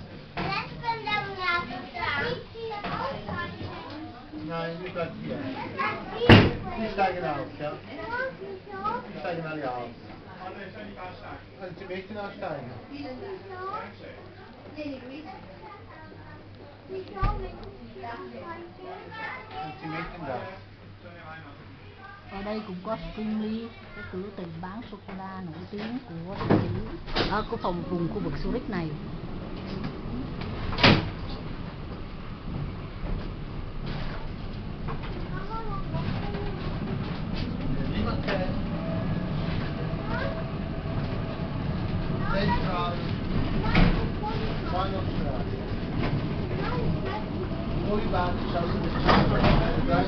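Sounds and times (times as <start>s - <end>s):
tram interior hum: 24.4s - 50.0s.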